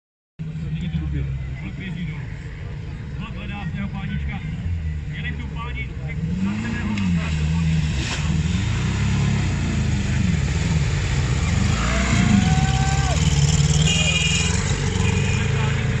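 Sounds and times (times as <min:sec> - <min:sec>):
small tractor engine revving: 0:06.1 - 0:16.0.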